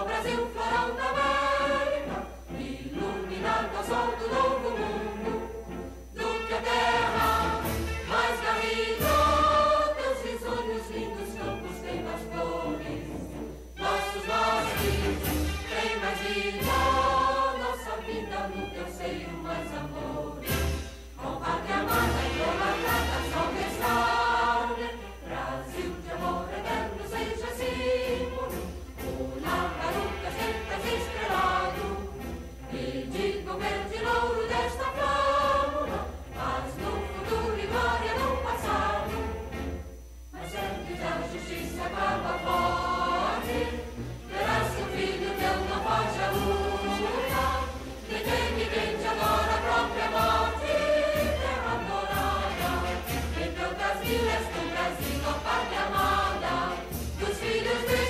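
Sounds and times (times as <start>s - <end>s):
choir singing an anthem: 0.0s - 58.0s
orchestral accompaniment: 0.0s - 58.0s.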